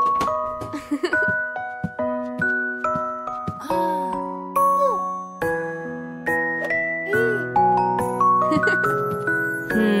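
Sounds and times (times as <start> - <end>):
lullaby on bell-like chimes: 3.5 - 10.0.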